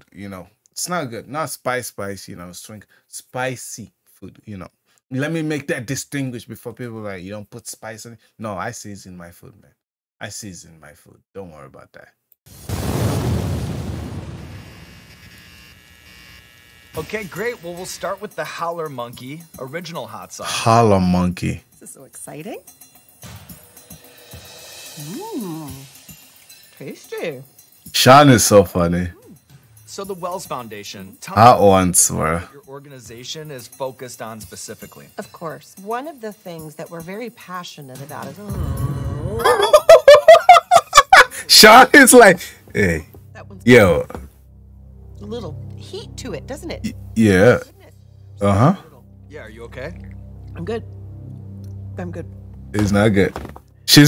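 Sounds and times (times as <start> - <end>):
faint steady buzz: 14.4 - 18.0
man laughing hard: 39.4 - 41.7.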